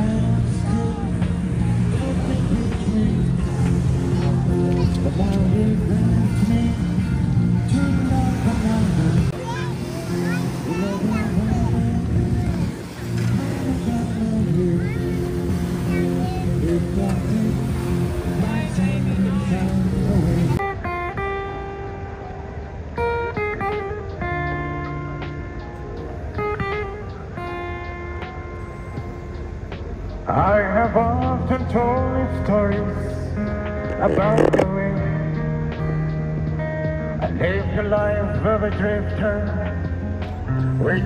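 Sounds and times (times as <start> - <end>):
man singing: 0.0 - 9.4, 10.6 - 20.6, 30.2 - 36.1, 37.2 - 40.0, 40.7 - 41.0
amplified acoustic guitar melody: 0.0 - 41.0
outdoor chatter: 0.0 - 41.0.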